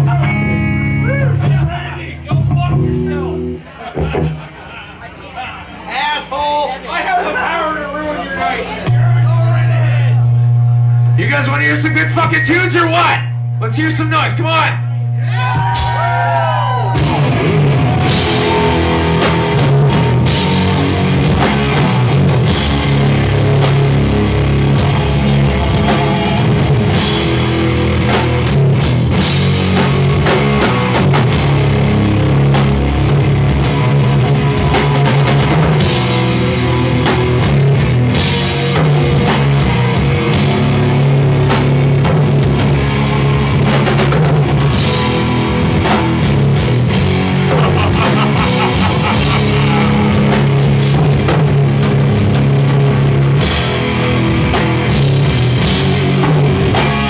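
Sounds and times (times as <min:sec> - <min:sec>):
distorted electric guitars: 0:00.0 - 0:04.6, 0:08.8 - 0:57.0
pounding drum kit: 0:08.8 - 0:57.0.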